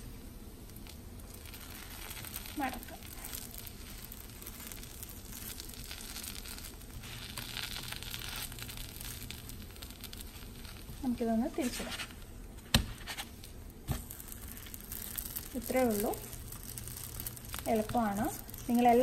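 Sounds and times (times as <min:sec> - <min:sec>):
dosa sizzling in a pan: 0:00.0 - 0:19.0
plastic spatula scraping: 0:11.6 - 0:12.2.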